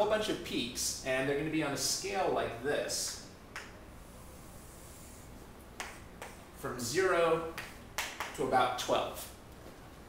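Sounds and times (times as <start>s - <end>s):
chalk scraping on chalkboard: 4.0s - 6.4s
chalk tapping on board: 5.8s - 6.4s, 7.5s - 8.4s.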